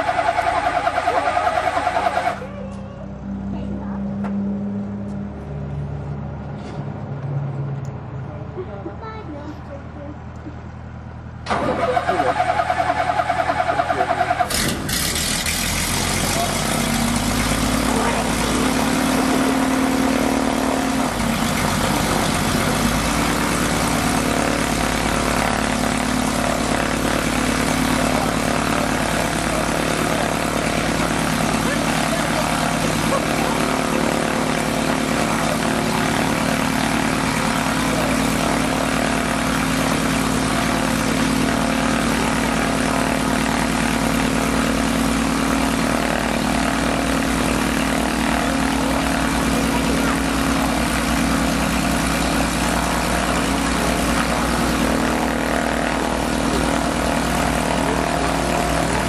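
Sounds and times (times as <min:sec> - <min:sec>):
aircraft engine starter cranking: 0:11.4 - 0:16.7
aircraft engine idling: 0:11.4 - 0:59.0.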